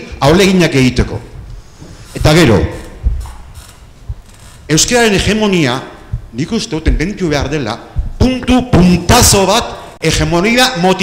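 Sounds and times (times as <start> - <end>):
man speaking: 2.2 - 3.0, 4.7 - 11.0
faint low rumble: 2.8 - 8.4.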